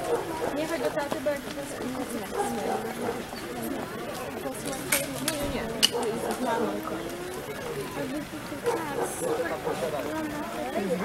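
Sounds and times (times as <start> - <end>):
onlookers chattering: 0.0 - 11.0.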